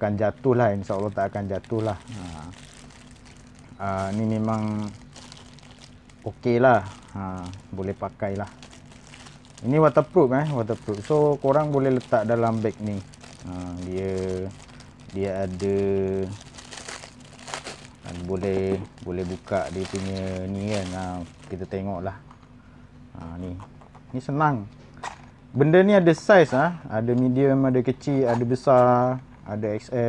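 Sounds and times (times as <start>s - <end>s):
plastic wrap rustling: 0.8s - 21.8s.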